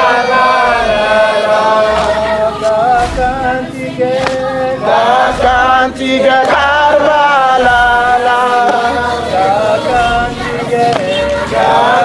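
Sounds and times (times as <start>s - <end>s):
person chanting: 0.0s - 12.0s.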